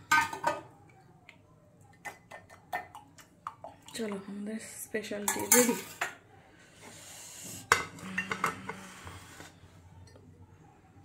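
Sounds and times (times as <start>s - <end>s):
crockery clinking: 5.2s - 6.2s.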